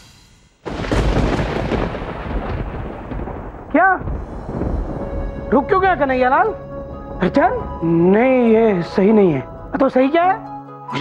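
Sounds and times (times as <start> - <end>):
thunder rumbling: 0.6 - 10.5.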